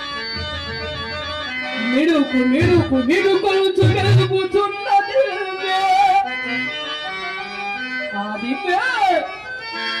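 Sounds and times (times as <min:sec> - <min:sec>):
harmonium: 0:00.0 - 0:10.0.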